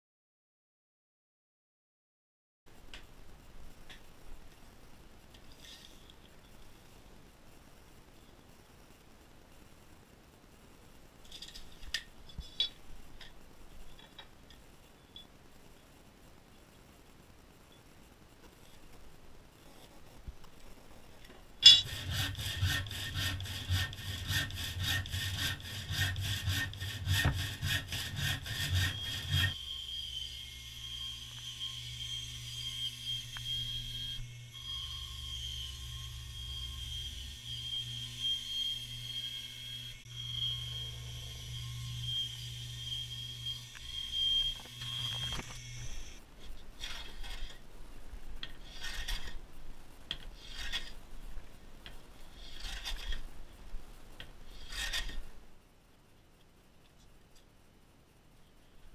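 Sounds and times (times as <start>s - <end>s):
bandsaw whining: 21.6s - 46.2s
handsaw cutting wood: 21.7s - 29.6s, 48.6s - 49.4s, 52.4s - 53.2s
hand plane shaving wood: 21.8s - 29.6s, 52.4s - 53.2s.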